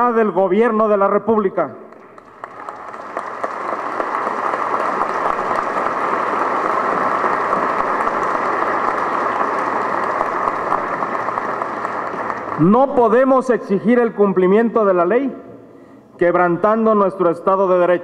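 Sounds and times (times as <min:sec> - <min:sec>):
audience applauding: 0:01.9 - 0:13.2.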